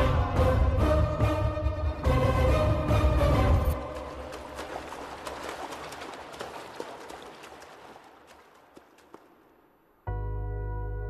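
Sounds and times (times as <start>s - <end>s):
sharp water slaps: 3.8s - 9.8s
fish splashing in water: 3.9s - 9.4s.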